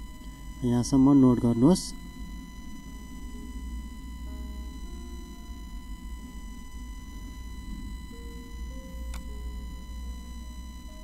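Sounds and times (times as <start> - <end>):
faint high whine: 0.0 - 11.0
low electrical hum: 0.0 - 11.0.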